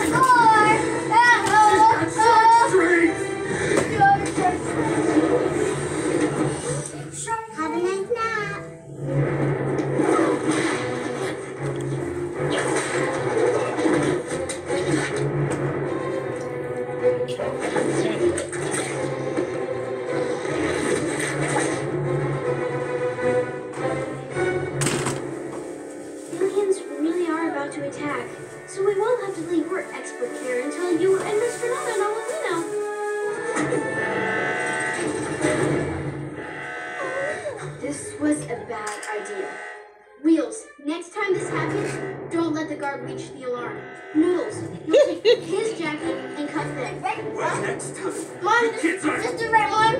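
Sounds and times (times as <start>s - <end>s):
background music: 0.0s - 49.9s
voices: 26.3s - 32.9s, 37.0s - 49.9s.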